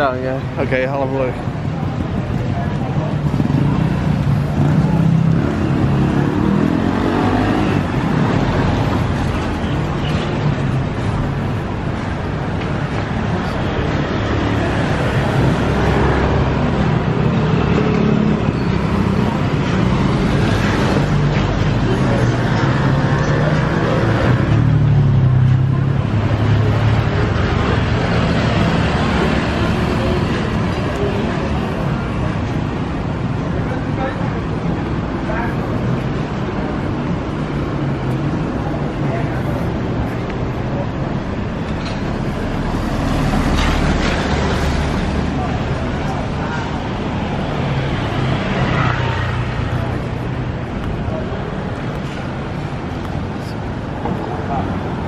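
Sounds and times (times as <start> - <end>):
motorbike engines passing: 0.0 - 55.0
traffic on a wet road: 0.0 - 55.0.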